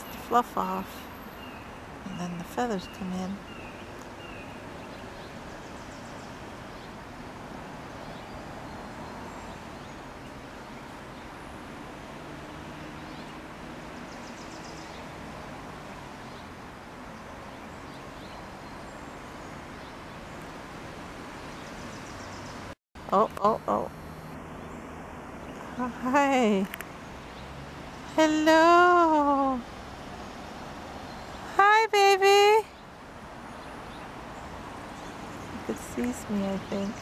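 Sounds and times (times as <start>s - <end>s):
small birds chirping: 0.0s - 7.2s, 7.8s - 15.2s, 16.0s - 37.0s.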